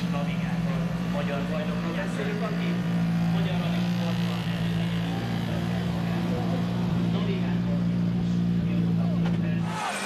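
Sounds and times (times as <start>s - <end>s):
car engine idling: 0.0s - 10.0s
faint crowd voices: 0.0s - 10.0s.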